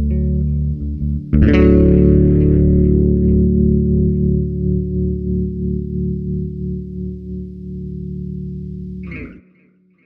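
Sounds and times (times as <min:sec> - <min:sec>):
electric bass guitar chord ringing: 0:00.0 - 0:09.4.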